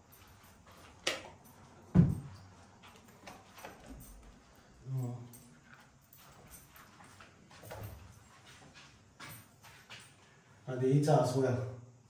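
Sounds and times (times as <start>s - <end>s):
footsteps on tiled floor: 0.0s - 10.6s
man speaking: 10.7s - 11.8s.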